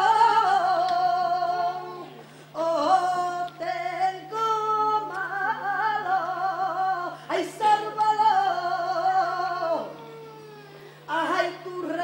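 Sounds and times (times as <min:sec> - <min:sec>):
unaccompanied voice singing: 0:00.0 - 0:10.2, 0:11.1 - 0:12.0.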